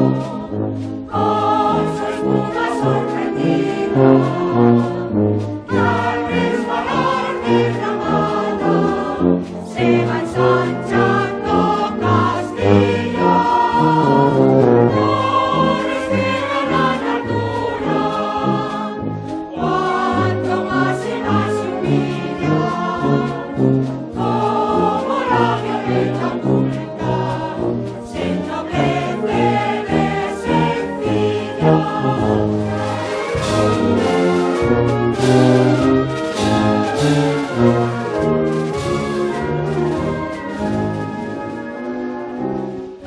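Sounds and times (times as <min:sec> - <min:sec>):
choir singing a hymn: 0:00.0 - 0:42.9
low brass beat: 0:00.0 - 0:43.0
wind band playing: 0:00.0 - 0:43.0.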